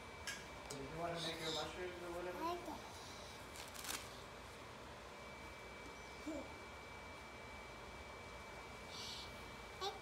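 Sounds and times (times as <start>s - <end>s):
steady high-pitched whine: 0.0s - 10.0s.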